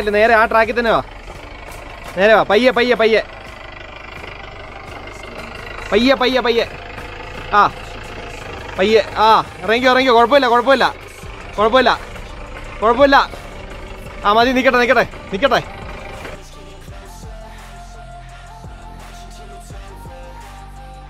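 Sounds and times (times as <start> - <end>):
car engine running low: 0.0 - 21.0.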